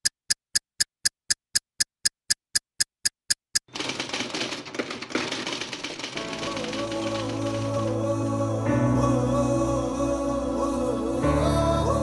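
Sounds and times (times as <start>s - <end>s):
typewriter keystrokes clattering: 3.6s - 8.0s.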